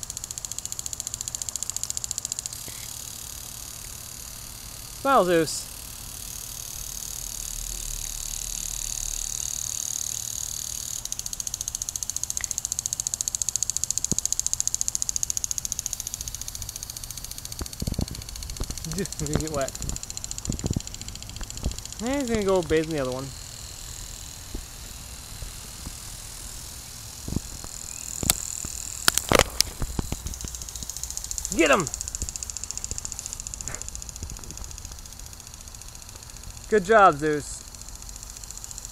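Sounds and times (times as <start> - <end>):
sprinkler spraying water: 0.0 - 38.9.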